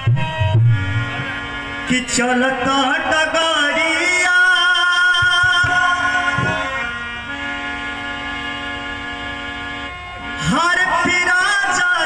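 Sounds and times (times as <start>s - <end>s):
tabla strokes: 0.0s - 1.5s
harmonium chord: 0.0s - 12.0s.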